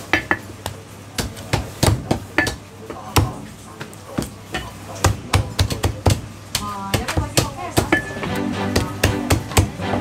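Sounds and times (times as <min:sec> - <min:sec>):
cleaver chopping on wooden block: 0:08.7 - 0:09.8.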